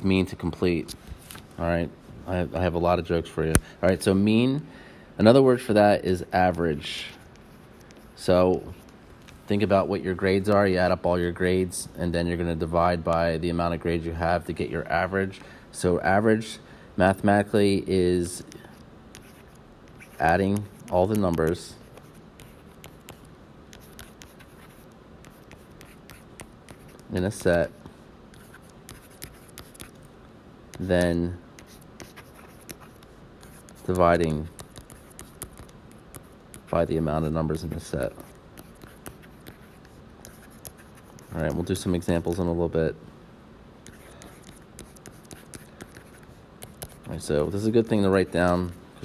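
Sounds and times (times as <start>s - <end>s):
stylus tapping and scratching: 18.4s - 30.1s, 30.7s - 42.6s, 43.8s - 48.8s.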